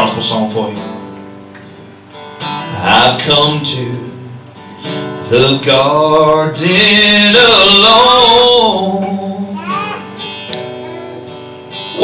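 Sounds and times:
acoustic guitar strummed gently: 0:00.0 - 0:12.0.

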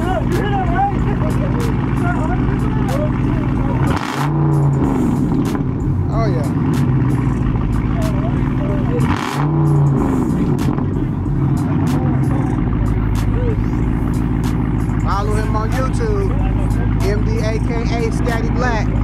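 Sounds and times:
car engine idling and revving: 0:00.0 - 0:19.0.

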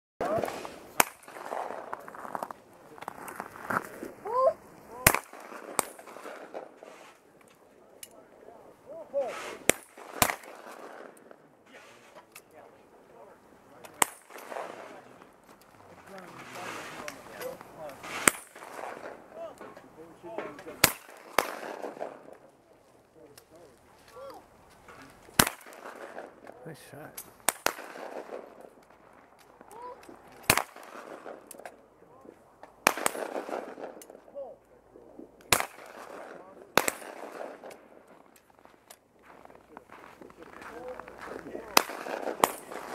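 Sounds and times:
shotgun shots: 0:00.2 - 0:02.0, 0:05.0 - 0:07.0, 0:09.3 - 0:11.4, 0:13.9 - 0:15.2, 0:18.0 - 0:19.4, 0:20.4 - 0:22.5, 0:25.3 - 0:26.6, 0:27.4 - 0:28.7, 0:30.4 - 0:31.7, 0:32.8 - 0:34.2, 0:35.5 - 0:37.9, 0:41.6 - 0:42.9.

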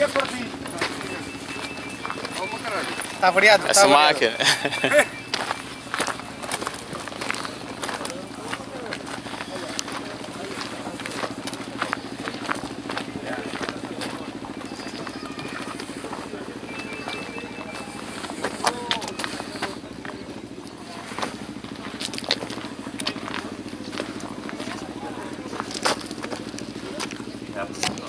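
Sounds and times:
low engine hum: 0:00.0 - 0:28.0
people talking: 0:00.0 - 0:28.0.

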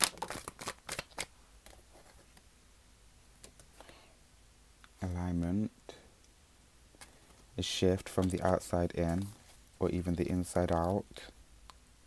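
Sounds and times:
cards being shuffled: 0:00.0 - 0:02.4, 0:07.0 - 0:11.1.

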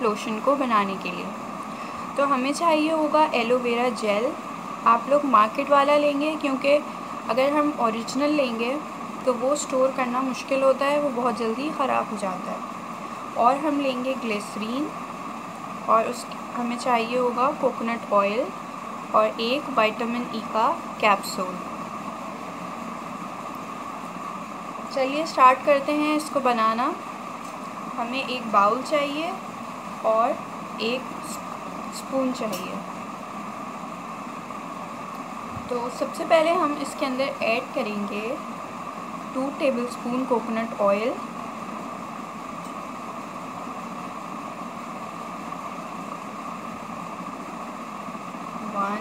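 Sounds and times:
steady background hiss: 0:00.0 - 0:49.0
steady room hum: 0:00.0 - 0:49.0.

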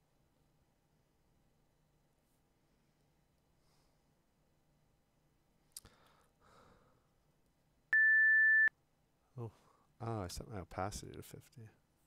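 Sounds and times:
timer alarm beep: 0:08.0 - 0:08.7.

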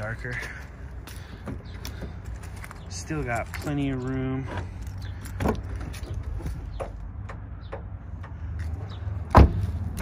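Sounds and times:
car door thumping: 0:09.3 - 0:09.8.

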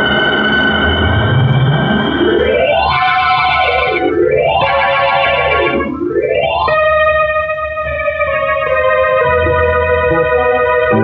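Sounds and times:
sustained chord: 0:09.3 - 0:11.0.

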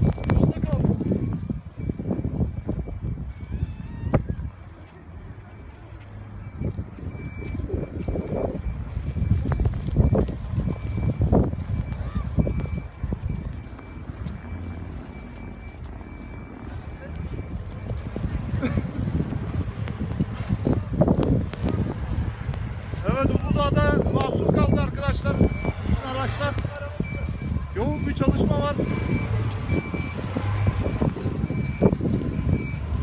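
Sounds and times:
wind buffeting microphone: 0:00.0 - 0:33.0
faint high beep: 0:05.4 - 0:18.0, 0:24.5 - 0:32.8.

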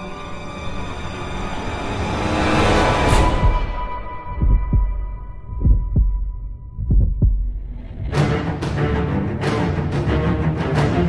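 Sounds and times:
heartbeat thumps: 0:03.4 - 0:08.4.

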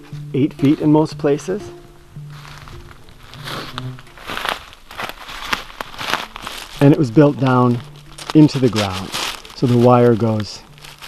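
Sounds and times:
low steady tone: 0:00.0 - 0:04.3
footsteps in dry leaves: 0:02.2 - 0:11.0.

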